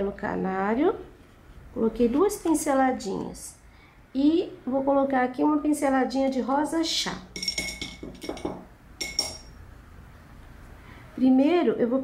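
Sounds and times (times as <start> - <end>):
light clink of small hard objects: 7.4 - 9.6.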